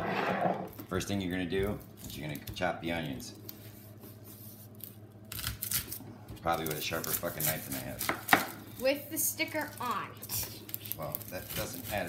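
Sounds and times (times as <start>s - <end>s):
knife cutting onion skin: 4.8s - 6.0s, 6.6s - 8.6s, 10.2s - 12.0s.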